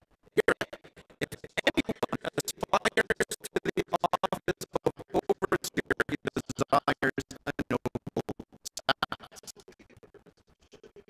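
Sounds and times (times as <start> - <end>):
stuttering glitched man's voice: 0.4 - 11.0.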